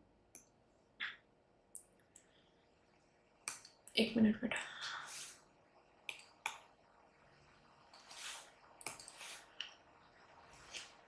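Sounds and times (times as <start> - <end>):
soft breathy hiss: 3.5 - 11.0.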